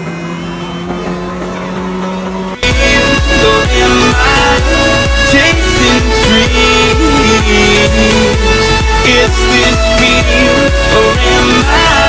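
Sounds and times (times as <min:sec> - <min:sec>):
car engine at steady revs: 0:00.0 - 0:09.2.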